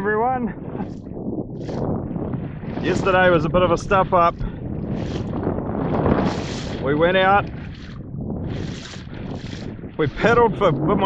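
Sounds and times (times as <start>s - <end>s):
water washing along hull: 0.0s - 11.0s
wind on microphone: 0.0s - 11.0s.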